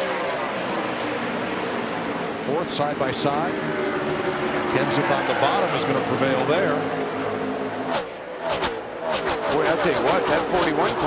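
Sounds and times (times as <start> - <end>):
race car engines running: 0.0 - 11.0
race cars sweeping past: 0.0 - 11.0.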